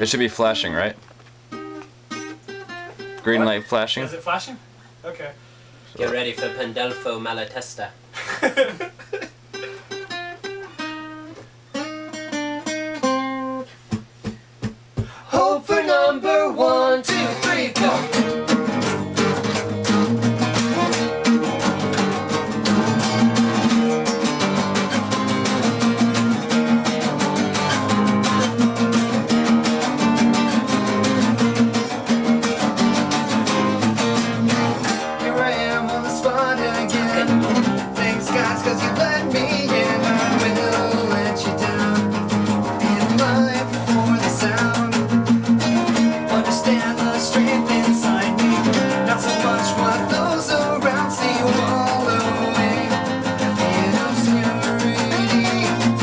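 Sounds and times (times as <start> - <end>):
acoustic bass guitar: 0.0 - 3.7, 9.5 - 56.0
acoustic guitars playing: 0.0 - 4.5, 5.2 - 56.0.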